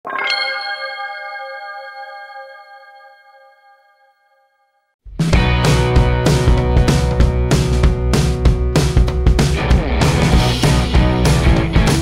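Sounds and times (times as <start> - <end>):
bright bell-like chime: 0.1 - 4.7.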